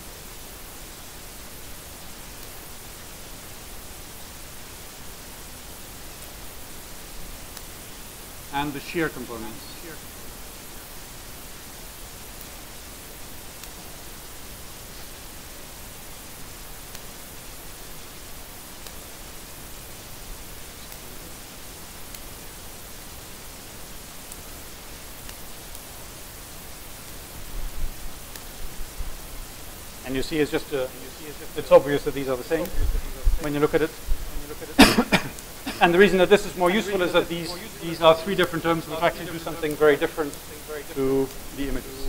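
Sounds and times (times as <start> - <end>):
steady background hiss: 0.0 - 42.0.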